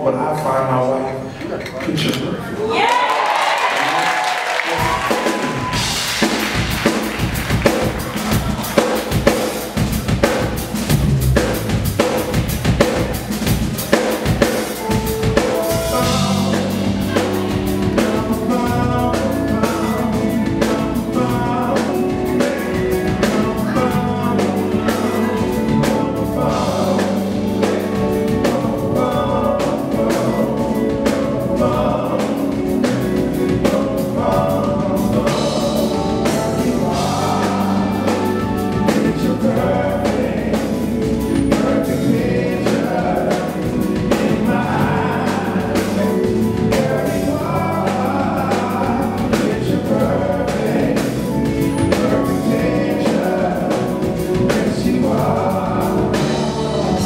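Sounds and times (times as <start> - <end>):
voices: 0.0 - 57.0
bass: 2.0 - 57.0
drum kit beat: 2.9 - 57.0
sustained keyboard chords: 5.8 - 57.0.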